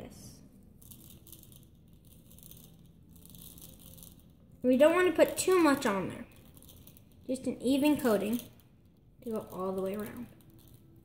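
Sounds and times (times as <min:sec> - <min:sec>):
sprinkles rattling from a jar: 0:00.7 - 0:11.0.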